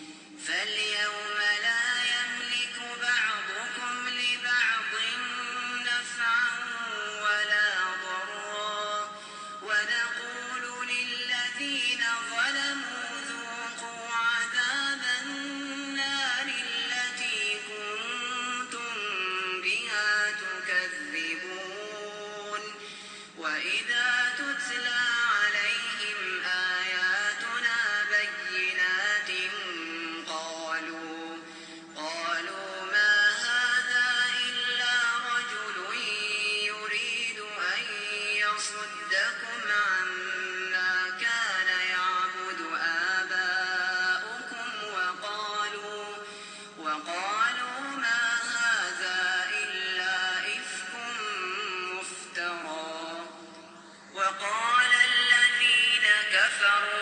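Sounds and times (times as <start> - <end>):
man reciting melodically: 0.0 - 57.0.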